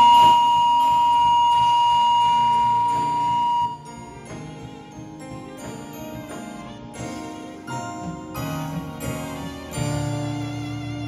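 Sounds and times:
electronic keyboard low note: 0.0s - 4.6s
electronic keyboard high note: 0.0s - 11.0s.

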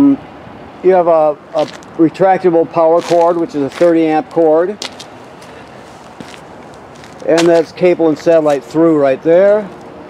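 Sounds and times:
outdoor background hiss: 0.0s - 10.0s
footsteps on asphalt: 1.6s - 2.0s, 2.7s - 8.7s.

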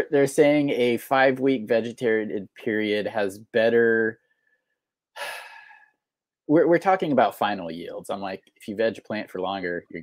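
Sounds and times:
man's breathy exhale: 5.2s - 6.0s.

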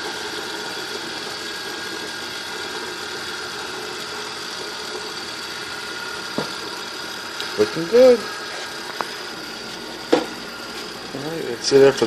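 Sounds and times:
electric motor whining: 0.0s - 12.0s.

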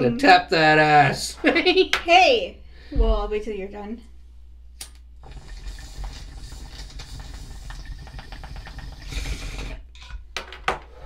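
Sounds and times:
water bong bubbling: 5.2s - 9.9s.

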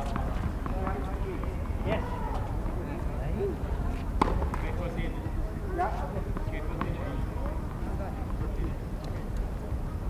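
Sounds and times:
tennis ball bouncing on court: 0.0s - 2.0s, 4.2s - 4.8s, 6.3s - 7.0s
faint voices: 0.0s - 10.0s.

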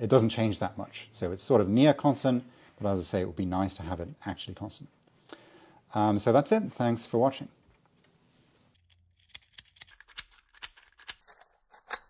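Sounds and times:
plastic linkage clicking: 8.8s - 11.3s.

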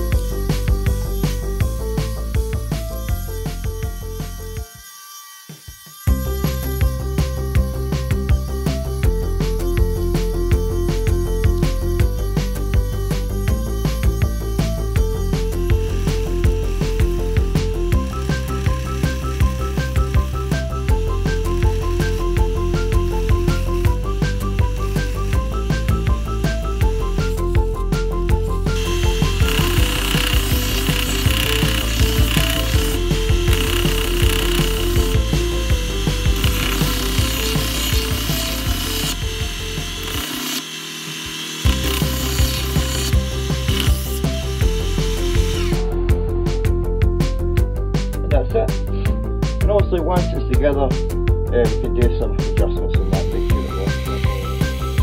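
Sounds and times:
belt sander grinding wood: 0.0s - 46.0s, 53.2s - 55.0s
background music: 0.0s - 55.0s.

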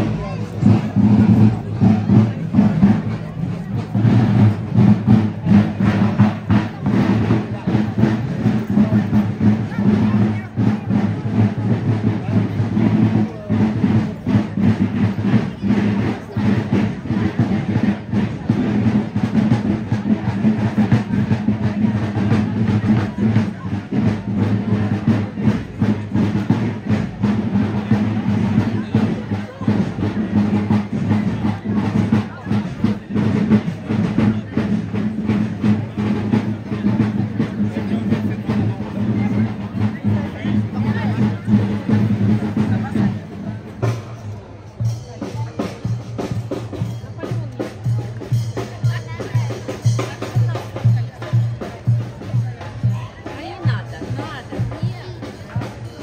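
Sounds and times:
crowd of onlookers: 0.0s - 56.0s
marching band drums: 0.0s - 56.0s.

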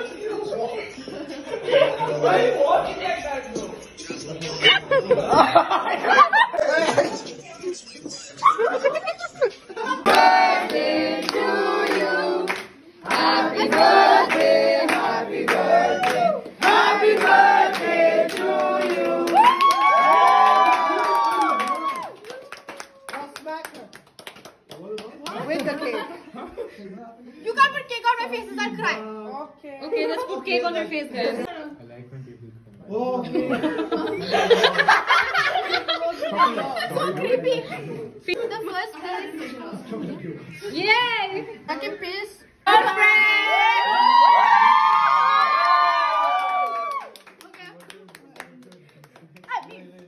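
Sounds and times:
scattered hand clapping: 11.2s - 25.7s, 45.6s - 50.0s
women shrieking and cheering: 19.4s - 22.3s, 43.0s - 47.1s.

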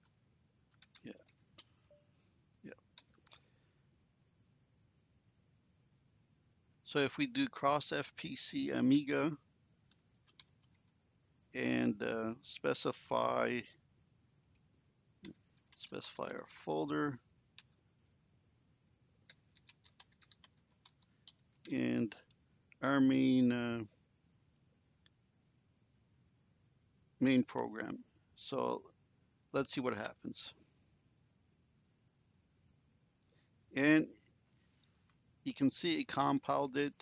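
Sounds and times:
faint typing on computer keyboard: 0.0s - 2.0s, 2.7s - 3.6s, 9.8s - 11.0s, 14.4s - 16.0s, 17.4s - 17.8s, 19.2s - 22.8s
faint computer keyboard clicks: 0.7s - 1.8s, 19.3s - 21.4s.

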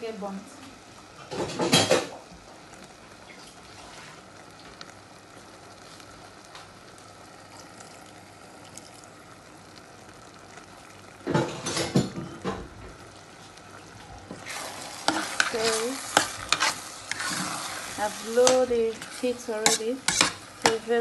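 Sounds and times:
filling sizzling in a pot: 0.0s - 21.0s
water poured into hot pot: 7.5s - 12.4s, 13.9s - 15.6s.

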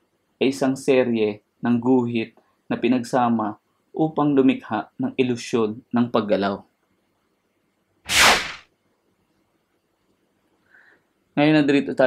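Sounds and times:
whoosh swish: 8.1s - 8.6s.

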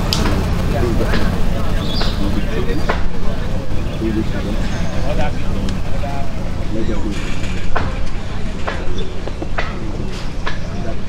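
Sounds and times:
distant players calling: 0.0s - 11.0s
low hum and rumble: 0.0s - 11.0s.

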